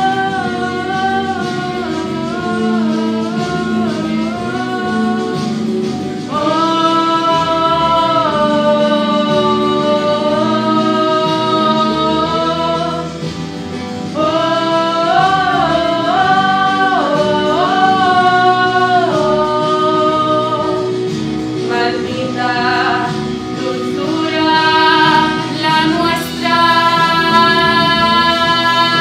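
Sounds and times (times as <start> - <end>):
person singing long notes: 0.0 - 13.2, 21.7 - 29.0
musical accompaniment: 0.0 - 29.0.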